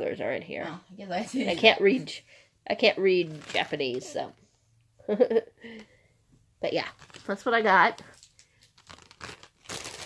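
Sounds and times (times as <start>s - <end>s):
plastic packaging crinkling: 3.2s - 4.2s, 6.7s - 10.0s.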